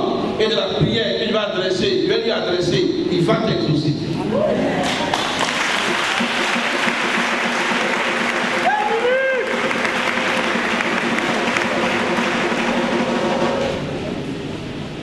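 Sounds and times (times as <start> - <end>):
congregation applauding: 4.8 - 13.8.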